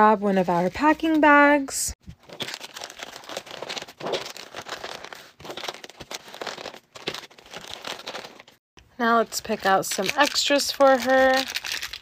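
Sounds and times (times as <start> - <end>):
plastic packaging crinkling: 2.1 - 8.6, 9.2 - 12.0.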